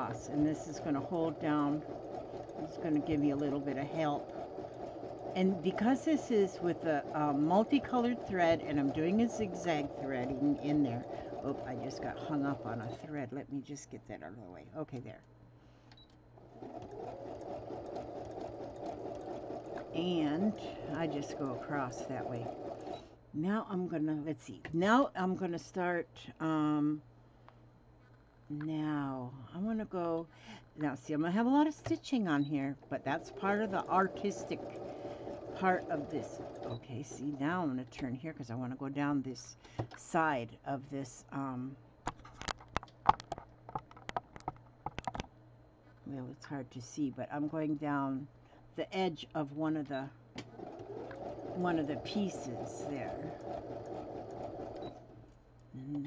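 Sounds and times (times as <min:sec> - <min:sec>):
electric sewing machine running: 0:00.0 - 0:12.8, 0:16.4 - 0:23.0, 0:32.9 - 0:36.8, 0:50.5 - 0:55.2.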